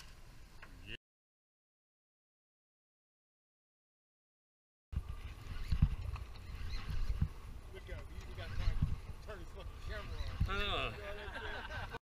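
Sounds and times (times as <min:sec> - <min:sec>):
wind rumble on microphone: 0:05.0 - 0:12.0.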